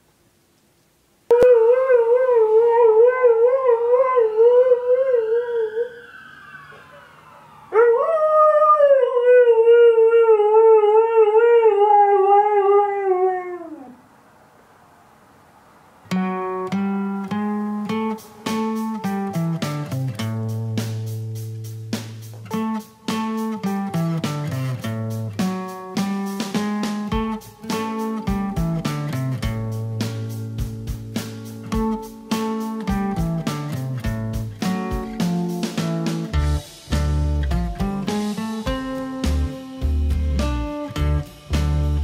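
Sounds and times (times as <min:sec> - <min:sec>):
dog howling: 0:01.3 - 0:14.0
acoustic guitar music: 0:16.1 - 0:42.0.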